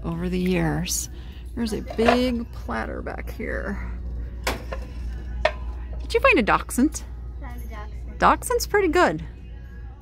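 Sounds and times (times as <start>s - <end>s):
steady low hum: 0.0s - 10.0s
ceramic plates knocking: 1.8s - 2.4s.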